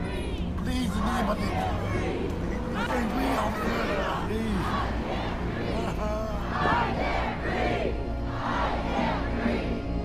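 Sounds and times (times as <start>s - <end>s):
crowd of protesters shouting: 0.0s - 5.8s
low steady music bed: 0.0s - 10.0s.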